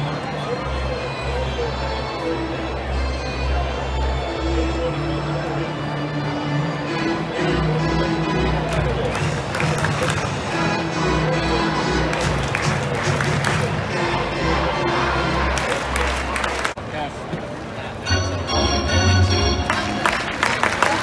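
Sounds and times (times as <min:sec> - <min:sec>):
crowd noise: 0:00.0 - 0:21.0
music over loudspeakers: 0:06.5 - 0:15.7, 0:18.1 - 0:20.3
people clapping: 0:08.6 - 0:10.7, 0:12.0 - 0:13.9, 0:15.4 - 0:16.8, 0:19.6 - 0:21.0.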